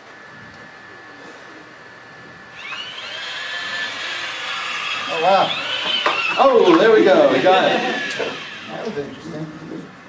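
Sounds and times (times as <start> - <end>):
electric motors whining: 0.2 - 10.0.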